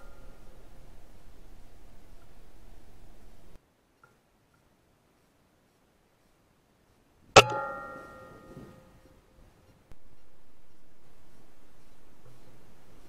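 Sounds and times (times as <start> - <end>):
metallic ring: 7.4 - 9.2.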